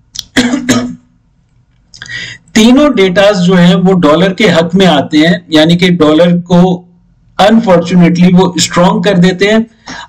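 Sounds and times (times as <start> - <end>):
man clearing his throat: 0.2 - 1.1
breath in: 2.0 - 2.4.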